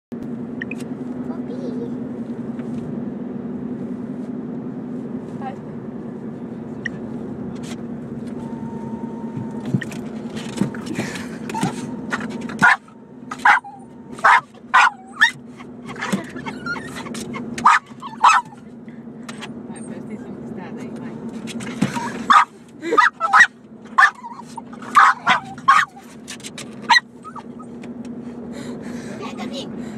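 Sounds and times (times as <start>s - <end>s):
car cabin drone: 0.1s - 29.9s
dog barking: 12.6s - 15.4s, 17.6s - 18.6s, 22.3s - 26.0s.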